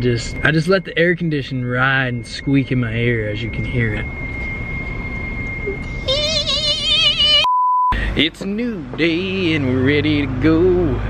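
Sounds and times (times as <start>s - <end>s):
cabin road noise: 0.0s - 11.0s
car air conditioning whine: 0.0s - 11.0s
short electronic bleep: 2.0s - 8.1s
sung note with vibrato: 3.9s - 7.5s.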